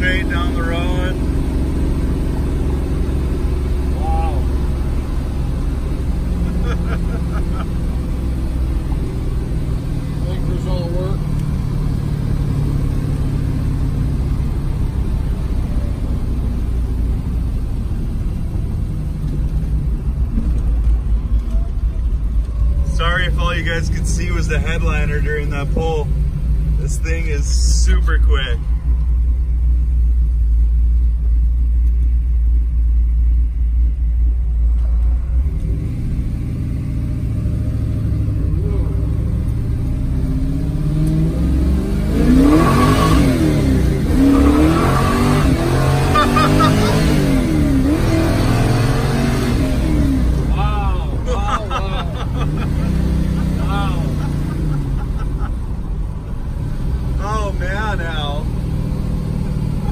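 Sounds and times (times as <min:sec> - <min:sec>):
car engine exhaust drone: 0:00.0 - 0:59.9.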